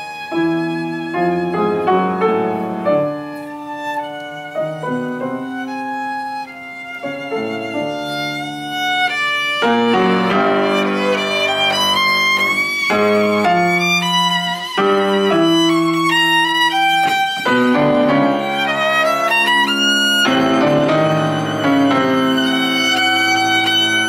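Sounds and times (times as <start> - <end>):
piano accompaniment: 0.0 - 24.0
violin melody with vibrato: 0.0 - 24.0.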